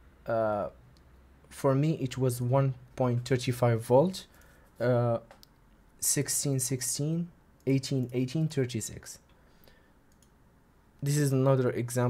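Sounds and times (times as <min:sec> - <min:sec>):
faint computer mouse clicks: 0:10.1 - 0:10.4.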